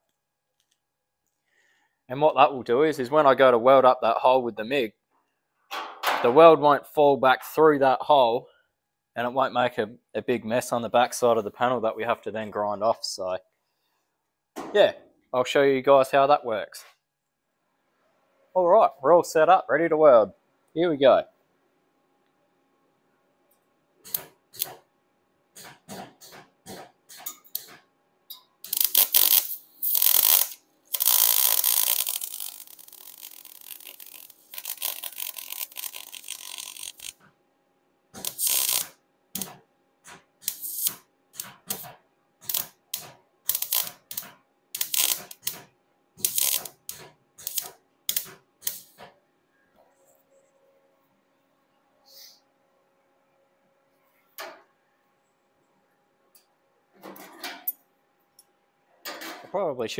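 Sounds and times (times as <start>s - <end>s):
welder arc crackling: 24.1s - 24.8s, 28.6s - 37.2s, 38.2s - 39.6s, 40.4s - 45.6s, 46.2s - 49.0s.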